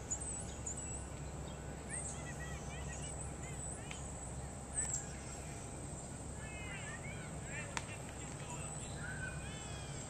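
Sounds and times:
birds chirping: 0:00.0 - 0:10.0
low outdoor rumble: 0:00.0 - 0:10.0.

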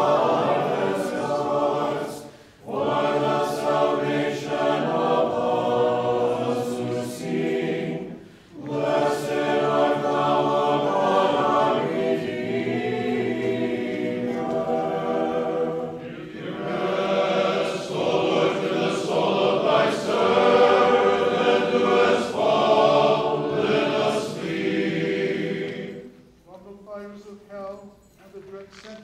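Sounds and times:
unaccompanied choir singing a hymn: 0:00.0 - 0:26.4.

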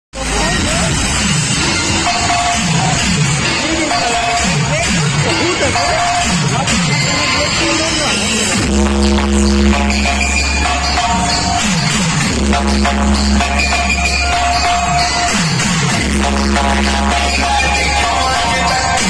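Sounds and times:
electronic dance music: 0:00.2 - 0:19.0
deep bass drop: 0:08.4 - 0:19.0.

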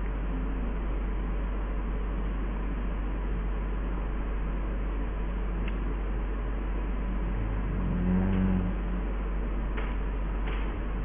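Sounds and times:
microphone hiss and hum: 0:00.0 - 0:11.0
low droning tone: 0:06.6 - 0:09.8.

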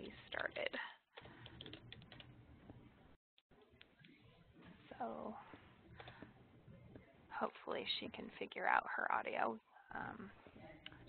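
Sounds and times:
typing on computer keyboard: 0:01.2 - 0:02.3.

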